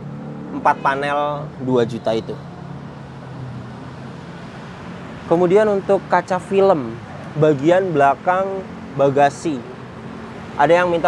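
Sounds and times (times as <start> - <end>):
road traffic noise: 0.0 - 11.0.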